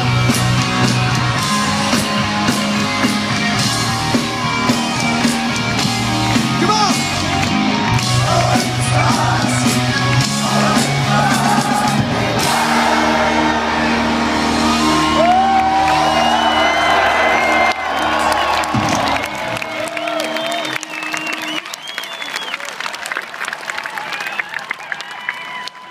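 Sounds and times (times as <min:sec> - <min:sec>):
crowd clapping: 0:00.3 - 0:14.0, 0:14.6 - 0:25.9
crowd cheering and whooping: 0:01.3 - 0:06.4, 0:07.0 - 0:25.9.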